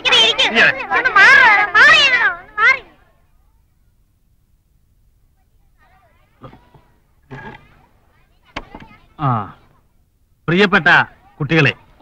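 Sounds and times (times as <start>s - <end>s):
children calling out: 0.0s - 3.1s.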